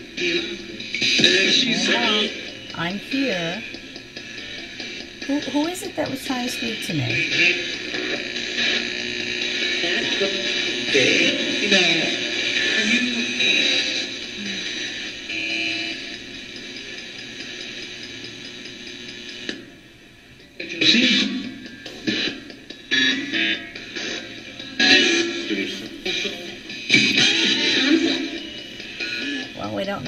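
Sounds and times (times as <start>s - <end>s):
choppy broadcast voices: 0.0s - 16.2s, 20.6s - 30.0s
radio static and hiss: 0.0s - 19.7s, 20.5s - 30.0s
fragments of radio music: 0.0s - 30.0s.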